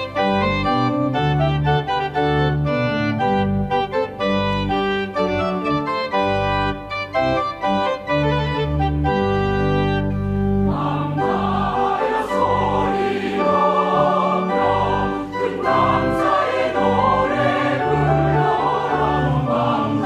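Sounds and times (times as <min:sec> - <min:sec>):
organ accompaniment: 0:00.0 - 0:20.0
choir singing: 0:10.6 - 0:20.0.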